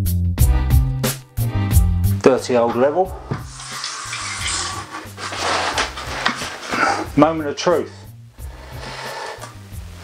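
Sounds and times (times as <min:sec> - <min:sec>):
background music: 0:00.0 - 0:10.0
spirit level scraping against wall: 0:02.7 - 0:07.2, 0:08.6 - 0:09.6.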